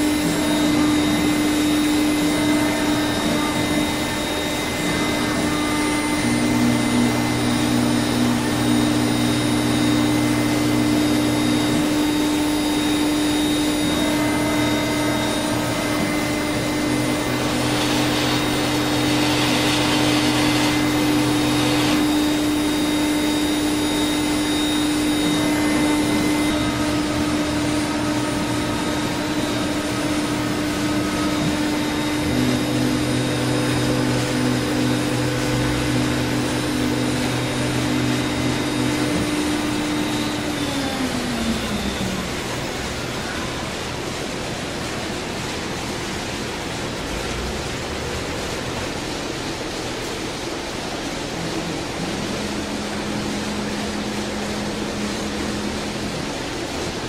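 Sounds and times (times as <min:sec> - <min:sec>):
router spindle tone: 0:00.0 - 0:43.9, 0:51.0 - 0:57.0.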